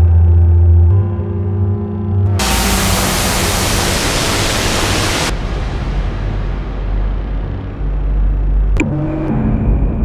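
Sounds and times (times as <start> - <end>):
low rumbling drone: 0.0 - 10.0
dense electronic hiss: 2.4 - 8.8.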